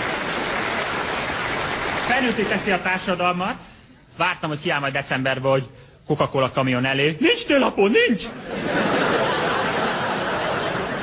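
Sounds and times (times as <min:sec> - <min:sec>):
audience applauding: 0:00.0 - 0:03.1.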